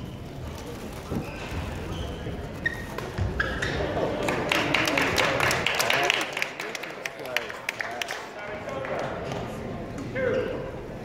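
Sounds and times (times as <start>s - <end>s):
shoes squeaking on court: 0.0s - 4.0s.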